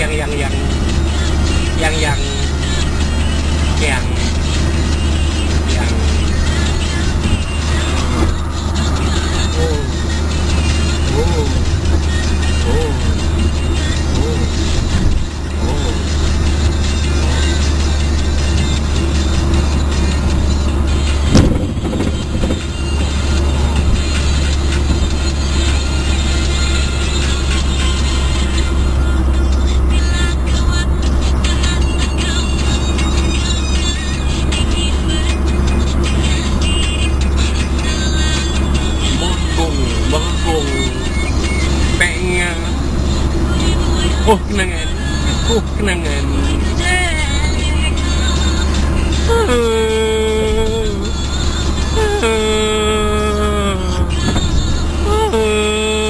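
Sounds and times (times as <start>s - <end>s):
person speaking: 0.0s - 4.7s, 5.6s - 14.8s, 15.5s - 16.3s, 39.0s - 48.0s, 49.2s - 51.2s, 52.0s - 56.0s
road and engine rumble: 0.0s - 56.0s
music: 0.7s - 42.0s.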